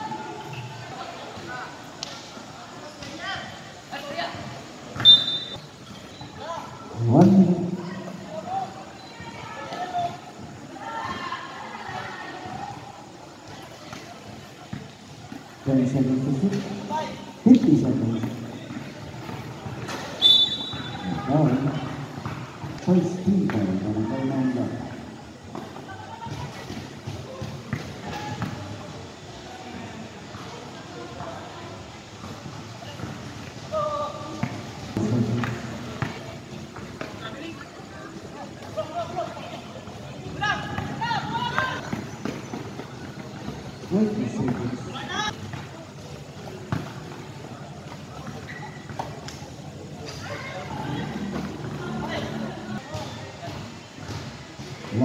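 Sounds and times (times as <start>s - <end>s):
basketball bouncing on court: 18.0s - 22.8s.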